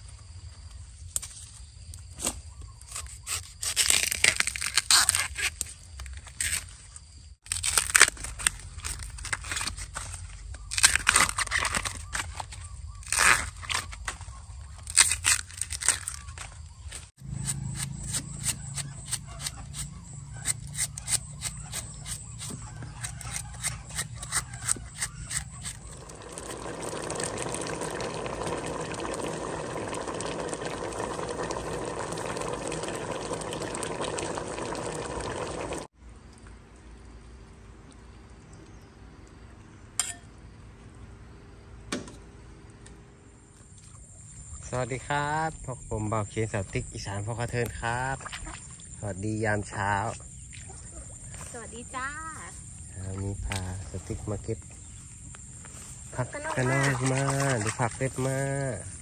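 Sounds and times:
bamboo shoots snapping: 0:01.1 - 0:06.7, 0:07.4 - 0:26.6, 0:53.4 - 0:53.8
shoots being peeled by hand: 0:02.1 - 0:06.8, 0:07.4 - 0:26.2.

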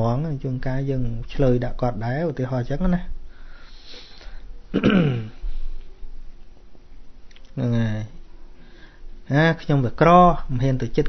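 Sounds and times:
man talking: 0:00.0 - 0:03.2, 0:07.6 - 0:08.2, 0:09.2 - 0:11.0
man drawing a breath: 0:03.3 - 0:04.6, 0:08.6 - 0:09.2.

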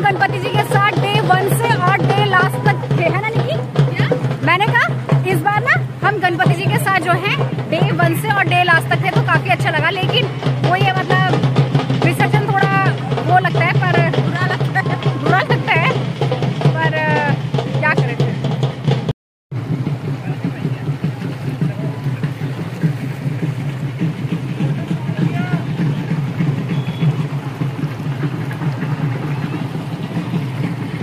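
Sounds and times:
voices: 0:00.0 - 0:18.5, 0:20.0 - 0:31.0
music: 0:00.0 - 0:31.0
river water flowing over stones: 0:00.0 - 0:31.0.

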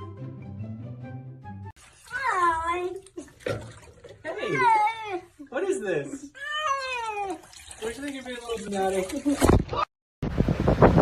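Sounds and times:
background music: 0:00.0 - 0:01.7.

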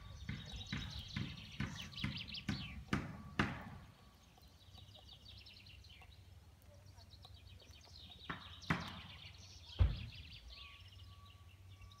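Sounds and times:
high bird chirping: 0:00.0 - 0:12.0.

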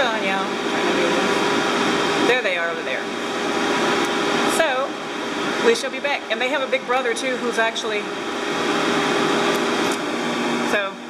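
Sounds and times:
grooming dryer blowing air: 0:00.0 - 0:11.0.

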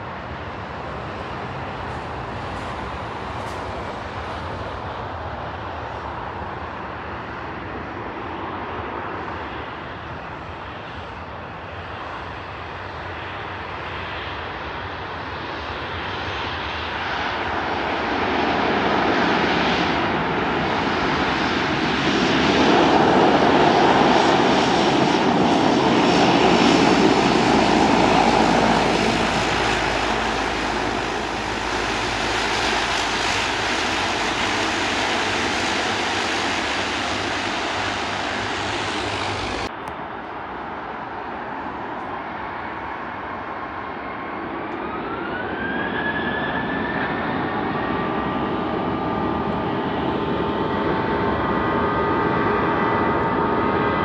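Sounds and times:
turboprop plane engine hum: 0:00.0 - 0:54.0.

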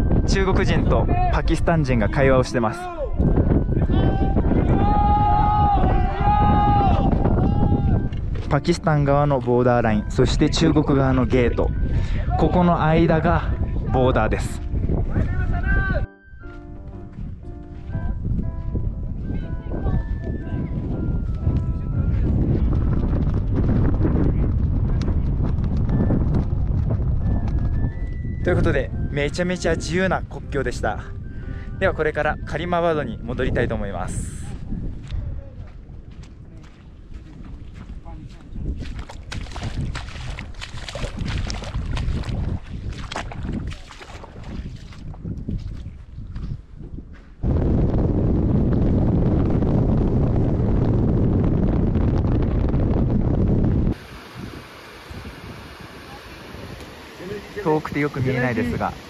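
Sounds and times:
wind buffeting microphone: 0:00.0 - 0:59.0
flag flapping in wind: 0:20.6 - 0:28.8, 0:37.6 - 0:55.0
feet splashing through stream: 0:37.4 - 0:46.2.

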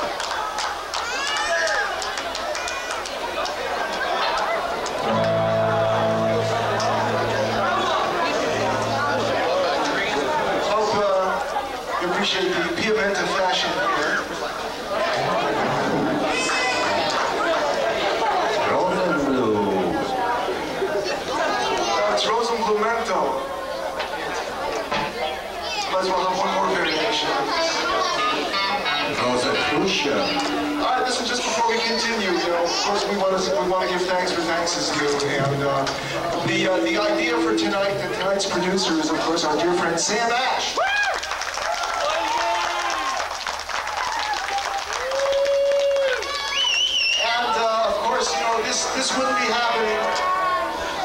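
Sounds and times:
indistinct talking of several people: 0:00.0 - 0:51.0
electric guitar lead with bends: 0:05.0 - 0:10.7, 0:28.5 - 0:32.1, 0:35.4 - 0:38.6.

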